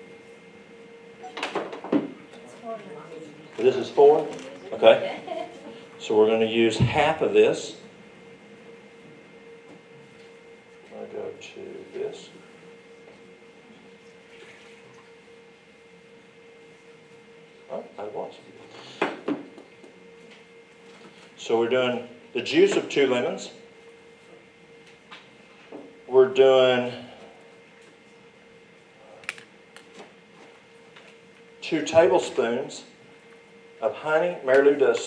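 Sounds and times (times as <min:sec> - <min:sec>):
steady hum: 0:00.0 - 0:35.0.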